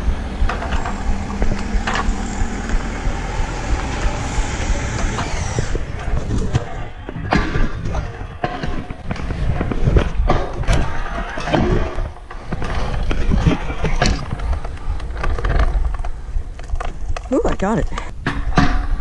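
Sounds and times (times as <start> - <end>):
scooter knocks and clatters: 0.0 - 17.4, 18.2 - 19.0
scooter wheels rolling on pavement: 0.0 - 19.0.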